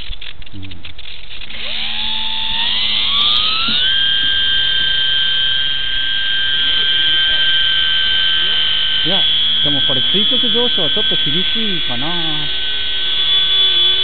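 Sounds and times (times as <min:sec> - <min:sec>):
electric motor and propeller whine: 0:00.0 - 0:14.0.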